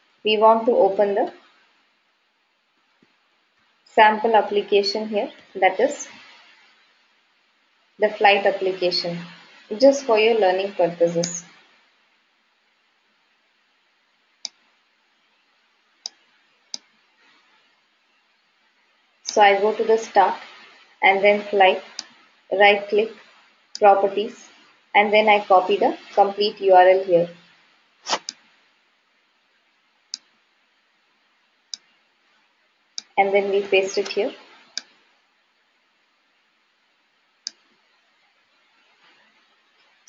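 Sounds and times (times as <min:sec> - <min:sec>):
computer mouse clicks: 0:11.2 - 0:11.6, 0:28.1 - 0:28.5, 0:37.4 - 0:37.7.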